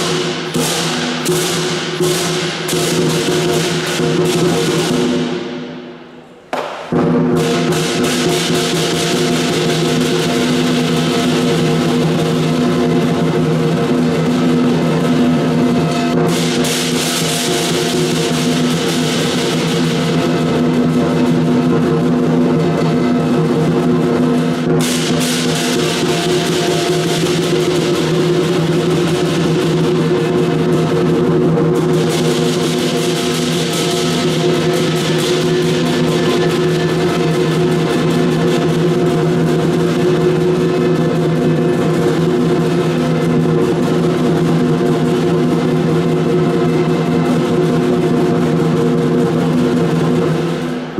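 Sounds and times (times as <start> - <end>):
large drum beating: 0.0 - 5.9, 6.5 - 50.9
cymbals clashing: 0.0 - 50.9.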